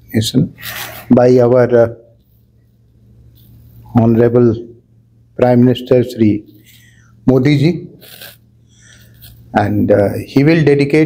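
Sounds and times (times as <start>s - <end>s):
steady low hum: 0.0s - 11.0s
man speaking: 0.1s - 2.2s, 3.9s - 4.8s, 7.2s - 8.1s, 9.5s - 11.0s.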